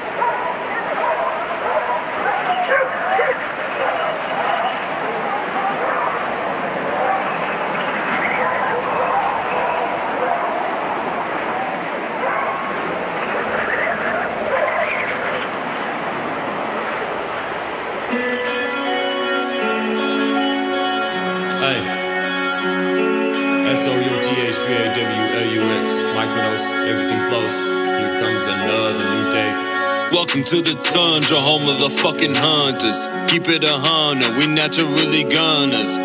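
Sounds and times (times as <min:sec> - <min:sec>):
overlapping yelps and whines: 0:00.2 - 0:10.8, 0:11.5 - 0:15.6
wind-like rushing noise: 0:03.4 - 0:18.2
instruments playing: 0:18.1 - 0:36.0
wavering voice-like sound: 0:23.7 - 0:33.1.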